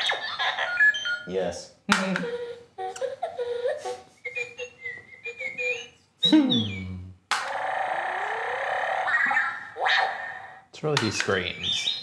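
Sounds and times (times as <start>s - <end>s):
electronic robot scream and whistle: 7.5s - 10.6s.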